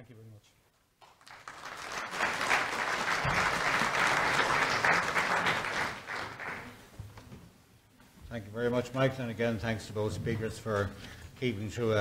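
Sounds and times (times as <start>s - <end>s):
audience applauding: 1.0s - 6.9s.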